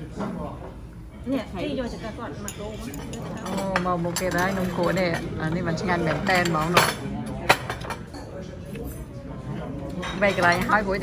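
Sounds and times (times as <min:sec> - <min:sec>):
dishes and cutlery clinking: 0:01.8 - 0:11.0.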